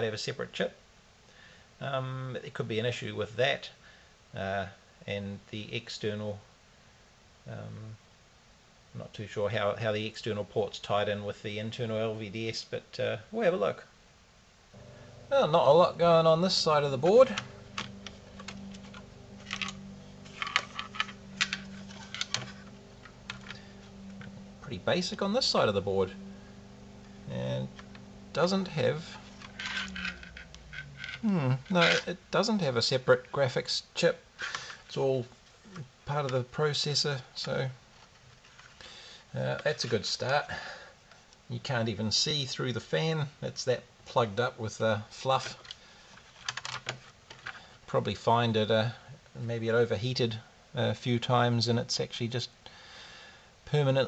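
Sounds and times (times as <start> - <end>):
faint steady hum: 0.0 - 54.0.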